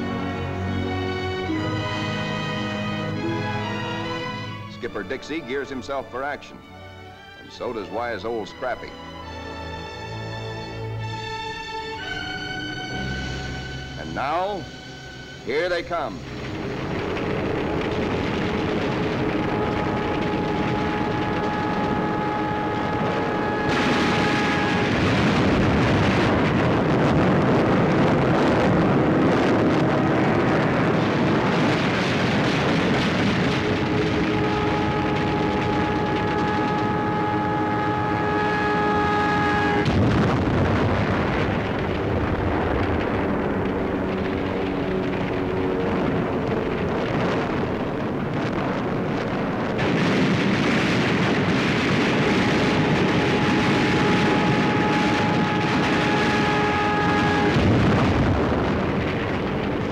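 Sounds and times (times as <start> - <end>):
aircraft engines: 0.0 - 59.9
sustained pitched tones: 7.5 - 49.8, 52.2 - 59.9
anti-aircraft gunfire: 15.7 - 59.9
explosions: 16.0 - 59.9.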